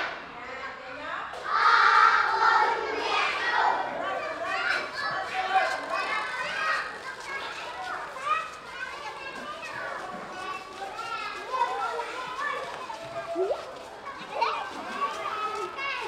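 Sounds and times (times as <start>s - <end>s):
children chattering and calling out: 1.5s - 16.0s.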